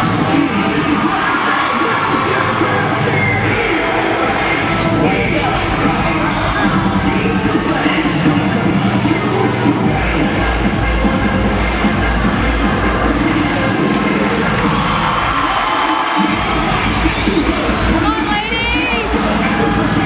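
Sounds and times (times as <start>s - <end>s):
crowd cheering and screaming: 0.0s - 9.7s, 13.1s - 20.0s
loud music with pounding beat: 0.0s - 20.0s.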